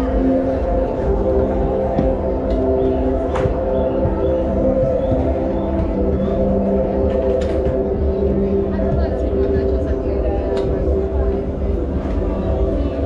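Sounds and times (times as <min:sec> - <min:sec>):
crowd chatter: 0:00.0 - 0:13.0
droning music: 0:00.0 - 0:13.0.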